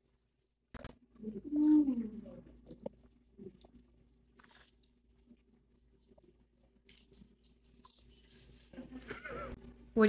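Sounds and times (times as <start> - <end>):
candy crunching being chewed: 1.7 - 9.1.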